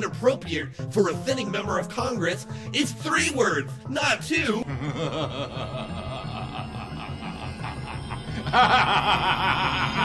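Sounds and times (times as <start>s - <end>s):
man chuckling: 4.6s - 10.0s.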